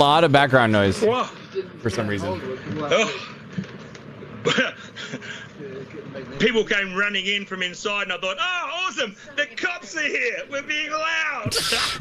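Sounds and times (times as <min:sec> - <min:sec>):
man's voice: 0:06.4 - 0:12.0.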